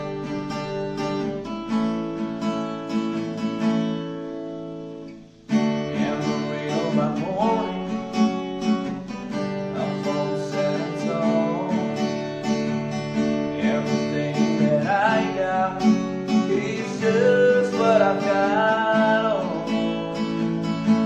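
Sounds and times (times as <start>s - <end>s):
acoustic guitar strumming: 0.0s - 21.0s
man singing: 5.7s - 21.0s.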